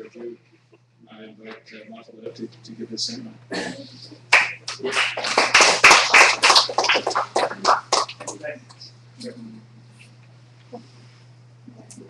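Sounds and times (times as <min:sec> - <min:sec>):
audience applauding: 0:04.3 - 0:08.5.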